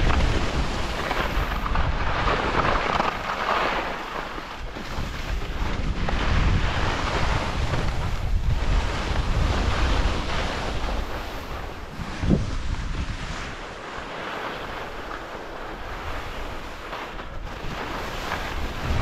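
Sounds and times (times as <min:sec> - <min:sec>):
skis carving on packed snow: 0:00.0 - 0:19.0
wind rushing over microphone: 0:00.0 - 0:19.0.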